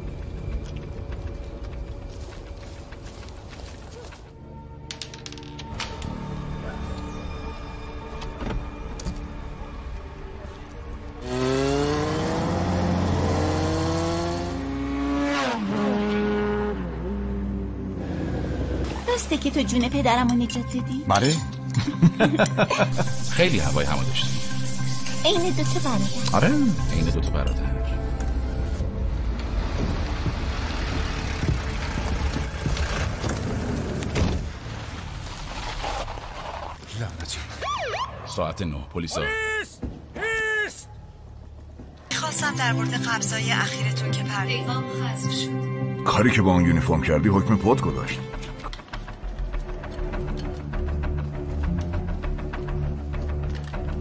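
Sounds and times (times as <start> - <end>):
van engine and road noise: 0.0 - 4.9, 7.5 - 20.5, 25.2 - 37.8
motorcycle engine accelerating: 11.2 - 18.9, 28.6 - 34.2.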